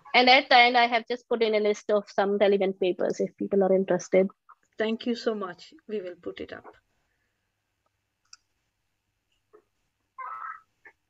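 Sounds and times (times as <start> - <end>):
computer mouse clicks: 8.2 - 8.5.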